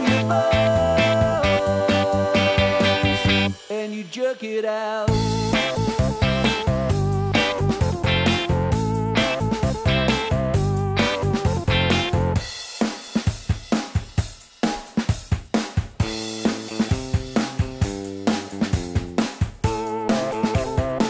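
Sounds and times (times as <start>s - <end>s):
wavering pitched lead line: 0.0s - 3.5s, 5.1s - 12.4s
bass: 0.0s - 3.6s, 5.1s - 12.6s, 15.9s - 21.0s
electric guitar chords strummed: 0.0s - 3.6s, 5.1s - 12.4s, 16.0s - 21.0s
drum kit: 0.0s - 3.8s, 5.1s - 21.0s.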